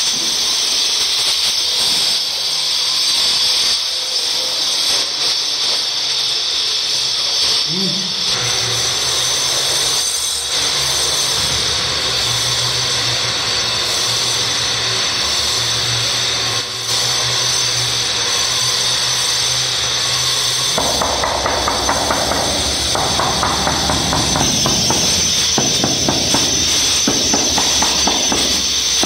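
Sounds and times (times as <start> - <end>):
hammer handle tapping stone: 20.8 - 29.0.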